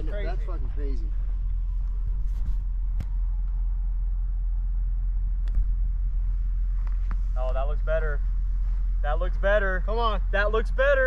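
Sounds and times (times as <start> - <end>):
low wind rumble on microphone: 0.0 - 11.0.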